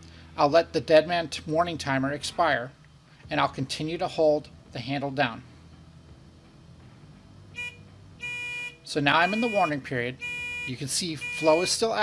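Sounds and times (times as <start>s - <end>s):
panel buzzer beeps: 7.6s - 11.8s.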